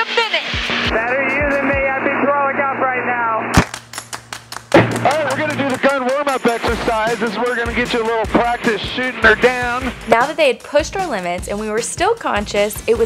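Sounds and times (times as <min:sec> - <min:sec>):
music: 0:00.0 - 0:03.0, 0:04.3 - 0:13.0
fast sharp ticks: 0:03.6 - 0:07.4
talk over aircraft intercom: 0:05.0 - 0:12.9.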